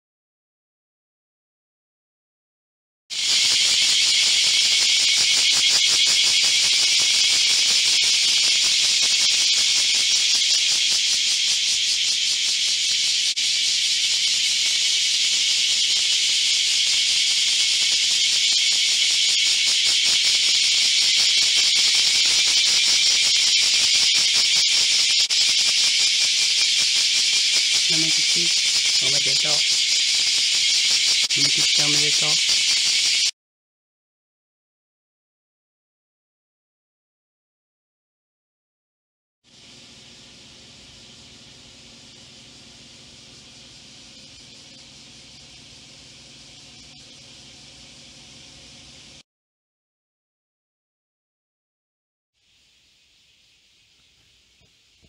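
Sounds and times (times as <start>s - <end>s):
cicadas buzzing: 3.1s - 33.3s, 39.5s - 49.2s, 52.4s - 55.0s.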